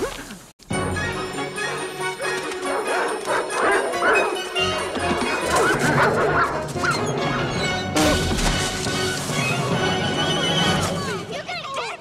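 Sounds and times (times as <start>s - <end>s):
dramatic film score music: 0.7s - 12.0s.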